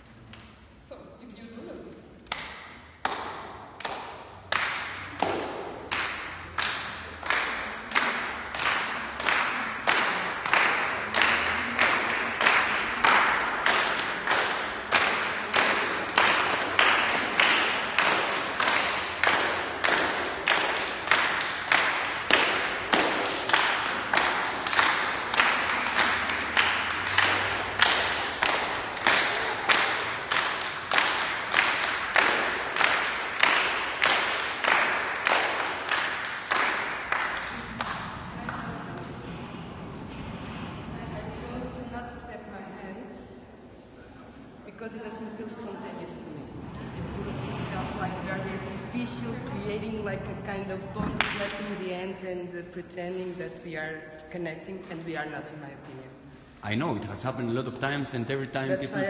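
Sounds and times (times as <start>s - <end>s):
people clapping in unison: 2.2s - 41.2s, 46.6s - 52.0s, 58.6s - 59.0s.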